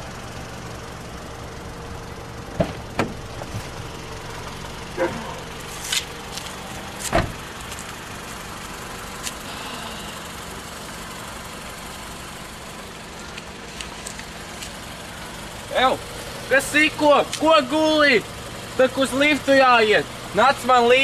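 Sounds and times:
car engine idling: 0:00.0 - 0:21.0
car door knocks: 0:02.6 - 0:03.7, 0:07.1 - 0:07.4.

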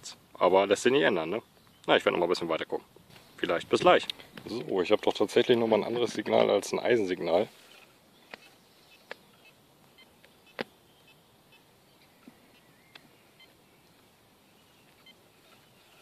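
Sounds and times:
sharp clicks: 0:12.2 - 0:14.1.

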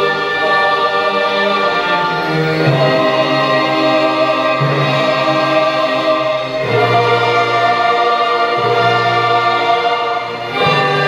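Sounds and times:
choir and orchestra sustained chords: 0:00.0 - 0:11.0.

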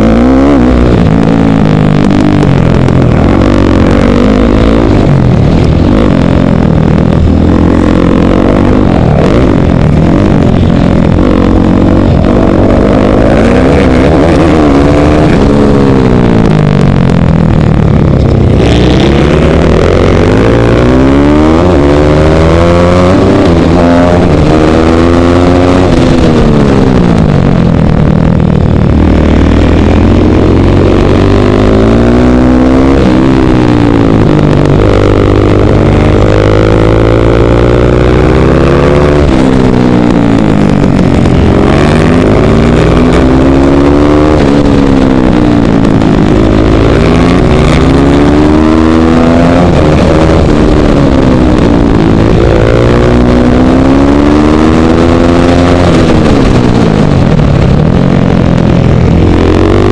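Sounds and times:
motorcycle engine accelerating: 0:00.0 - 0:59.9.

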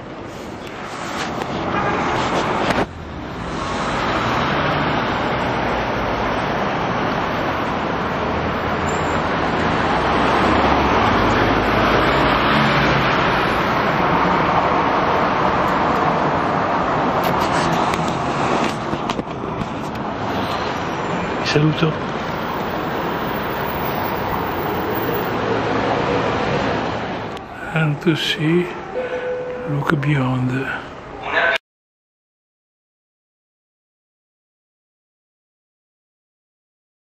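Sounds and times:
city street traffic: 0:00.0 - 0:31.6.

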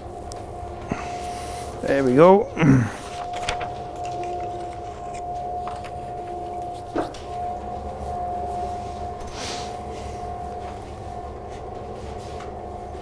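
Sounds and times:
electric motor whine: 0:03.0 - 0:10.6.

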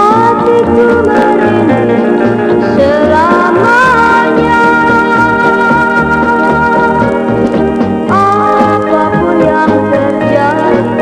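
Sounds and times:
bass line: 0:00.0 - 0:11.0
guitar: 0:00.0 - 0:11.0
sliding lead melody: 0:00.0 - 0:11.0.

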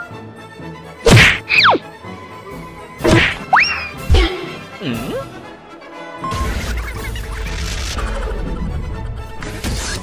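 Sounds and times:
cartoon whack: 0:01.1 - 0:01.8, 0:03.0 - 0:04.3.

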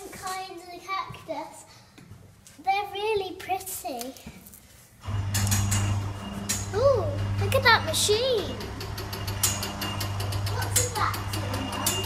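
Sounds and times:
steady low hum: 0:05.0 - 0:12.0.

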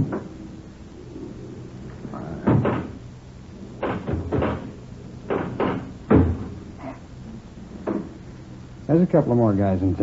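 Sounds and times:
low hum: 0:00.0 - 0:10.0
pinball knocking clacks: 0:03.8 - 0:06.5.

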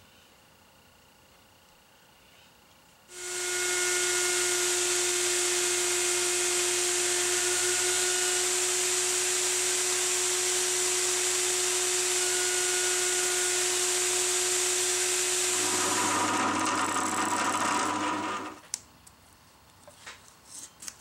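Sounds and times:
router high whine: 0:03.1 - 0:18.6.

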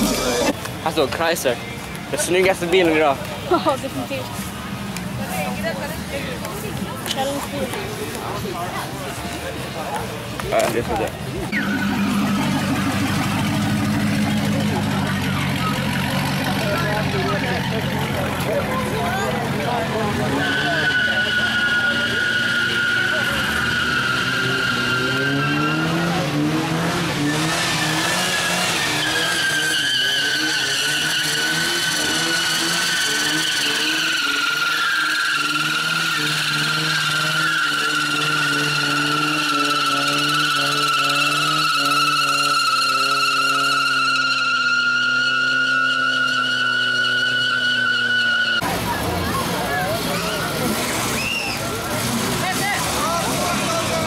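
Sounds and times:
car engine revving high: 0:00.0 - 0:00.6, 0:11.5 - 0:54.0
car tyres squealing: 0:00.0 - 0:54.0.

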